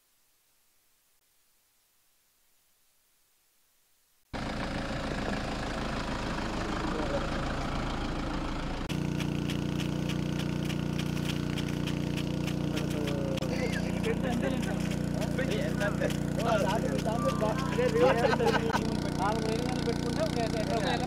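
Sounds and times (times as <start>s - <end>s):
low engine hum: 4.4s - 21.0s
impact sprinkler ticking: 8.9s - 21.0s.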